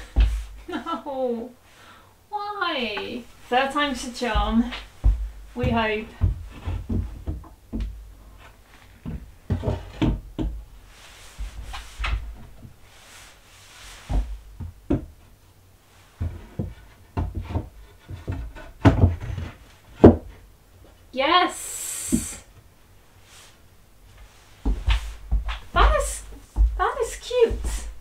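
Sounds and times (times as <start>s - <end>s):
wooden board knocking on brackets: 4.3s - 8.0s, 16.2s - 19.4s, 20.0s - 20.3s.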